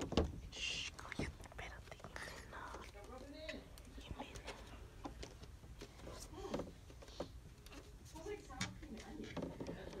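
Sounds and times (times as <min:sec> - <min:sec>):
people whispering: 0:00.5 - 0:05.1.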